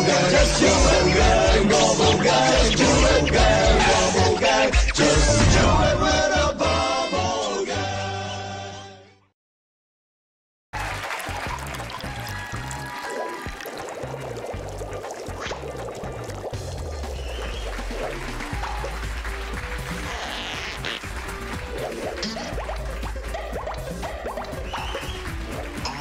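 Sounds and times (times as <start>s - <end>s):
theme music with bass line: 0.0s - 8.9s, 15.6s - 26.0s.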